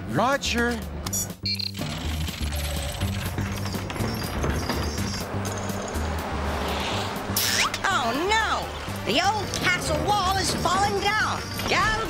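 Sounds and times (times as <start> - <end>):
cartoon music with pulsing bass: 1.0 - 12.0.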